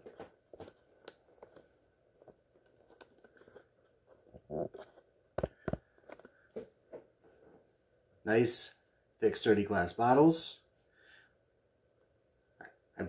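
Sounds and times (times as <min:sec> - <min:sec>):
crinkling rustles: 0:00.0 - 0:06.7.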